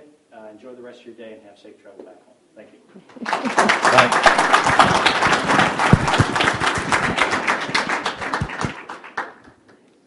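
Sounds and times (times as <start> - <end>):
audience applauding: 3.1 - 9.8.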